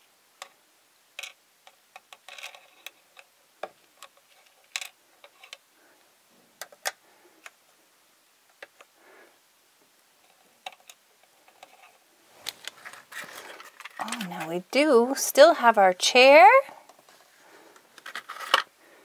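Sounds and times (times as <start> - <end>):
plastic toys clicking and tapping: 1.2 - 5.6, 6.6 - 7.6, 10.6 - 14.5.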